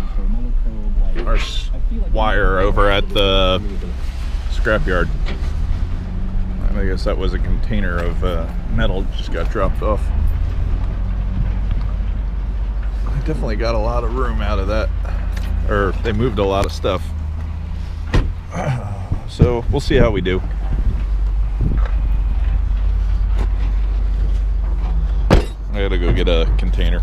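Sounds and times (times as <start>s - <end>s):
truck engine low rumble: 0.0s - 27.0s.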